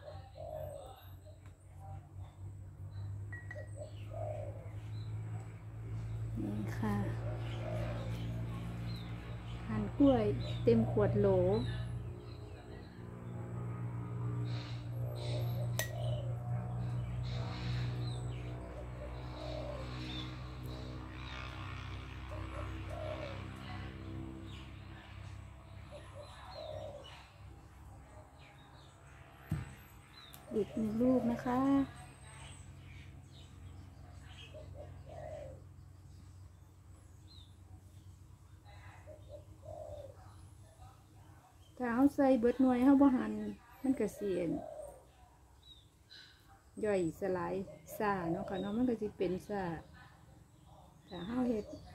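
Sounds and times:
dove cooing: 0:00.0 - 0:01.4, 0:03.4 - 0:04.9, 0:06.4 - 0:08.8, 0:14.5 - 0:25.2, 0:25.8 - 0:27.5, 0:34.2 - 0:36.0, 0:38.7 - 0:40.6, 0:43.0 - 0:45.3
dove-like bird calls: 0:00.0 - 0:02.4, 0:03.1 - 0:13.0, 0:14.3 - 0:49.9, 0:50.5 - 0:51.9.

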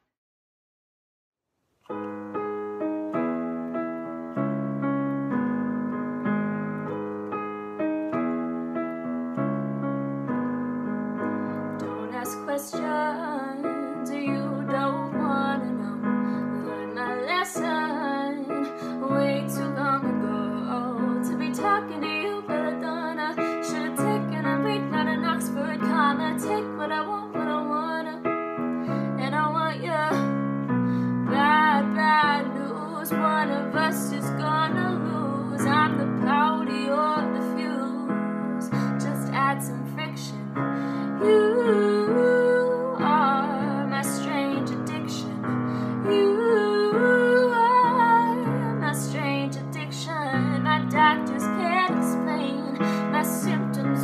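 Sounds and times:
piano playing slow chords: 0:01.9 - 0:54.0
young woman singing: 0:11.8 - 0:54.0.

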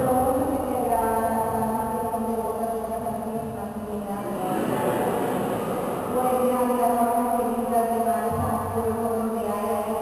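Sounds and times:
congregation reciting a prayer: 0:04.3 - 0:06.2.

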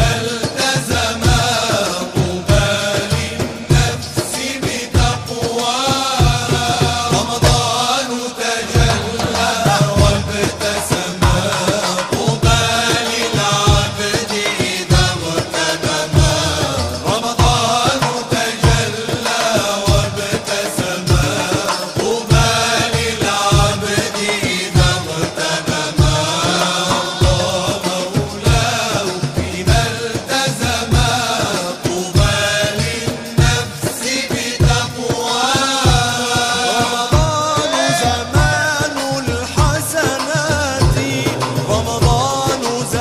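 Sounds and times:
hand drum beats: 0:00.0 - 0:08.0, 0:08.6 - 0:43.0
male vocal ensemble singing: 0:00.0 - 0:43.0.

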